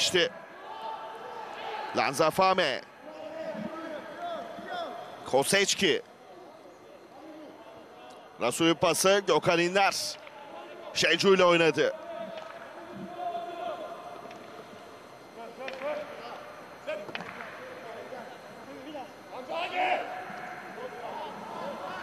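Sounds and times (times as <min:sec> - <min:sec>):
players shouting: 0:00.0 - 0:02.4, 0:10.2 - 0:14.7, 0:19.3 - 0:22.0.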